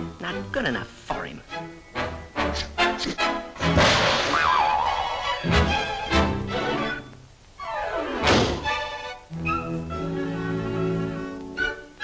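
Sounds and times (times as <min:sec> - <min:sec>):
sustained orchestral notes: 0:04.8 - 0:12.0.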